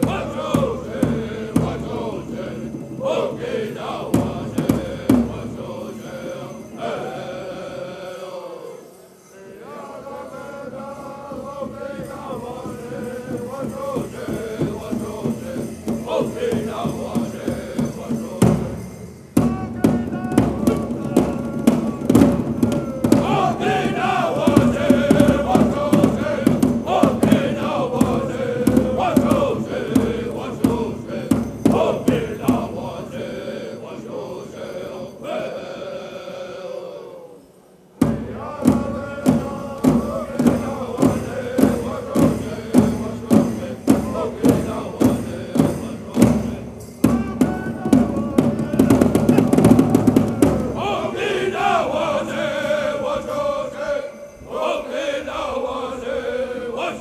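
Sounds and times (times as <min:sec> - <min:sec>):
large drum steady beat: 0:00.0 - 0:06.8, 0:10.9 - 0:33.6, 0:38.0 - 0:52.8
group singing in unison: 0:00.0 - 0:57.0.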